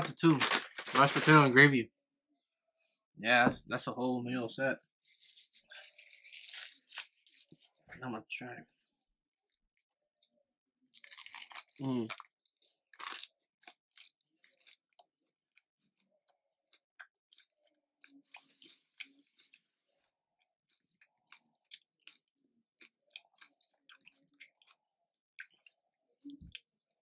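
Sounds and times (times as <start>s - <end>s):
crunchy bite of fried chicken: 5.2s - 7.5s, 10.9s - 15.1s
chewing with small crunches: 9.0s - 27.0s.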